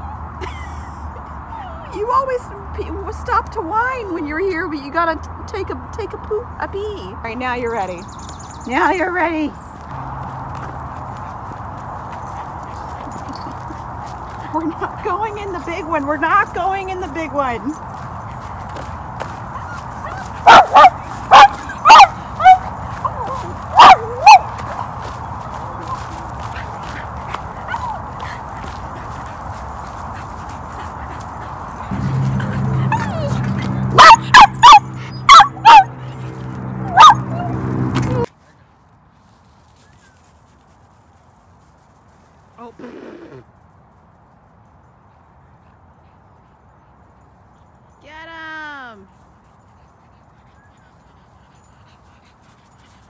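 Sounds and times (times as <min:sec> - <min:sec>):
dog yipping and whining: 0:19.6 - 0:24.5, 0:32.9 - 0:35.9, 0:36.8 - 0:37.6
low hum: 0:31.8 - 0:38.3.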